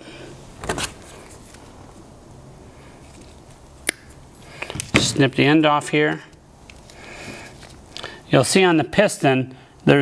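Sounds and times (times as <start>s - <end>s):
plastic tube handling rustle: 2.8s - 3.7s, 6.1s - 8.1s.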